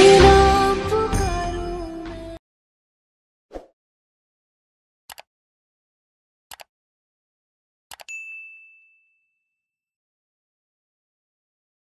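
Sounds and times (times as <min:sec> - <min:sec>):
notification bell ding: 0:08.0 - 0:09.8.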